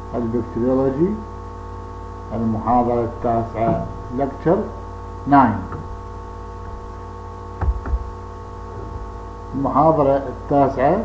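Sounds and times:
electrical mains hum: 0.0s - 11.0s
short knocks: 7.6s - 8.2s.

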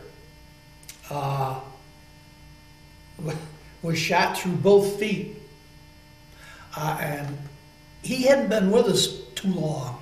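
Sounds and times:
electrical mains hum: 0.0s - 10.0s
man's voice: 3.2s - 5.4s, 8.1s - 10.0s.

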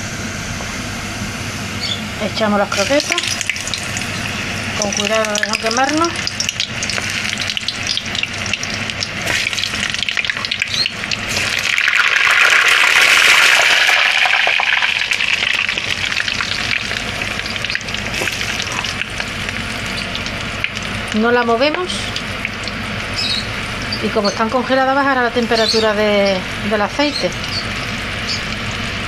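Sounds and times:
food deep-frying in oil: 0.2s - 29.0s.

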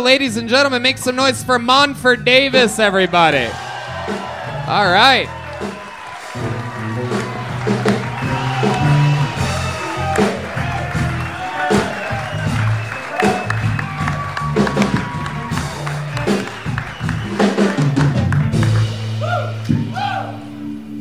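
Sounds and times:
bass line: 0.0s - 21.0s
live band instrumental: 0.0s - 21.0s
steady drum beat: 0.4s - 20.1s.

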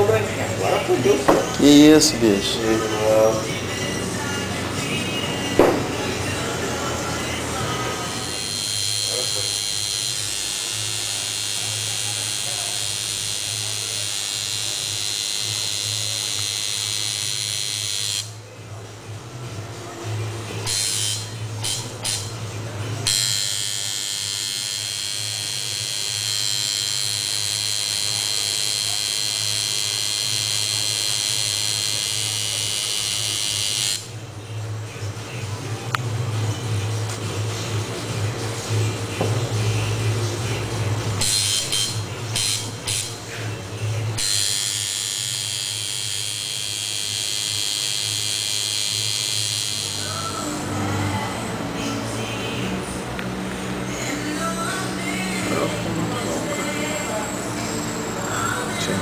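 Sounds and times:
tattoo machine buzzing: 5.4s - 18.4s, 20.6s - 22.4s, 23.0s - 34.2s, 41.2s - 59.0s.

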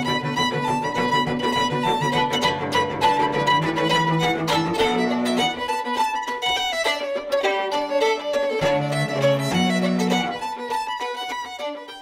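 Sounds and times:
fiddle playing a tune: 0.0s - 12.0s.

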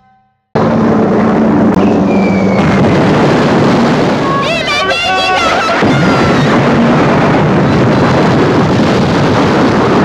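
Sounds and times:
propeller planes droning: 0.6s - 10.0s
falling bomb whistle: 1.8s - 2.8s.

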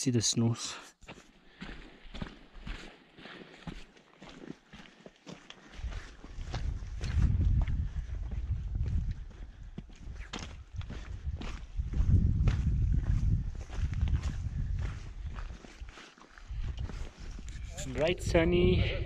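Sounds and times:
footsteps on stony trail: 1.0s - 18.0s
wind rumble on microphone: 5.8s - 19.0s.

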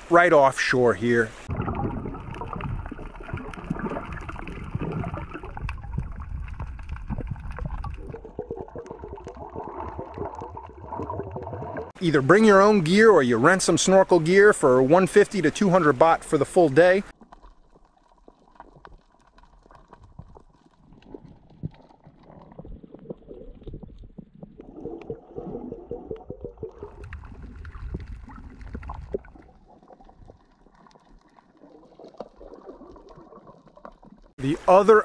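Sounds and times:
underwater water sloshing and gurgling: 0.0s - 34.8s
small clicks and crackles: 2.2s - 10.7s, 17.1s - 24.6s, 26.9s - 34.4s.

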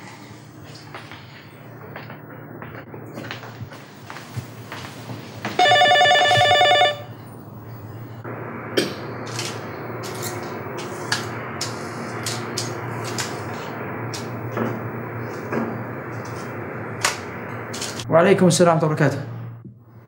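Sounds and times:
telephone ringing: 5.5s - 7.3s.

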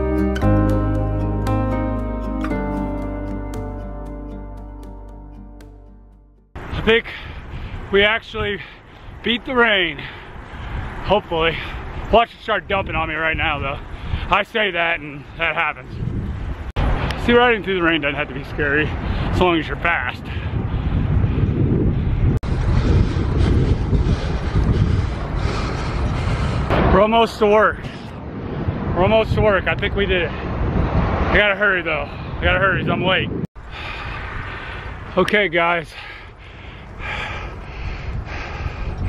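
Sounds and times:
wind buffeting microphone: 6.6s - 39.0s
person breathing hard: 20.4s - 26.7s, 33.6s - 35.0s, 35.9s - 39.0s.

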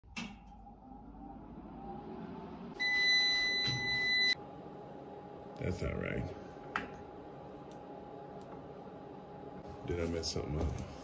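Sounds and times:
high buzzer beep: 2.8s - 4.4s.

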